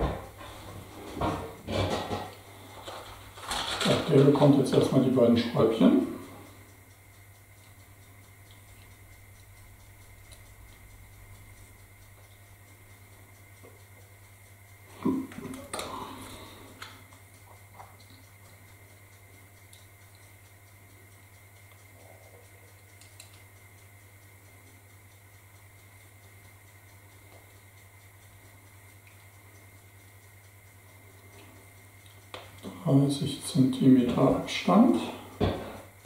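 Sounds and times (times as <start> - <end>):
clattering and rustling: 0.0 - 4.0
steady low hum: 0.0 - 36.0
faint clicks: 15.6 - 24.9.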